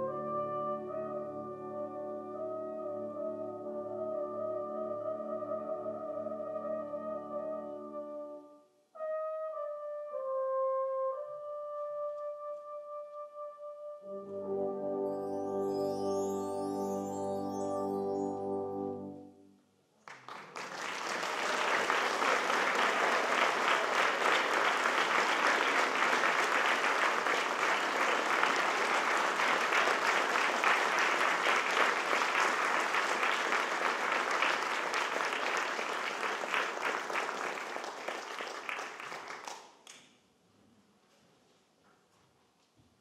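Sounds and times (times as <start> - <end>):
audience applauding: 20.0 - 39.8.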